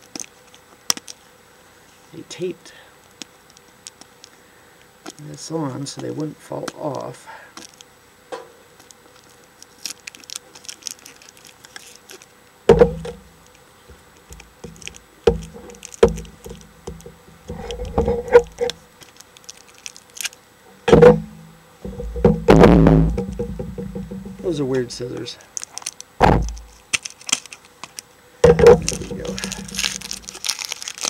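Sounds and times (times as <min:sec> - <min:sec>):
packaging rustling: 0:08.8 - 0:12.3, 0:13.0 - 0:20.4, 0:23.2 - 0:31.0
rubbing and bumping: 0:12.7 - 0:13.2, 0:13.9 - 0:18.8, 0:20.8 - 0:24.9, 0:26.2 - 0:26.8, 0:28.4 - 0:30.5
plastic toys clicking and knocking: 0:25.6 - 0:31.0.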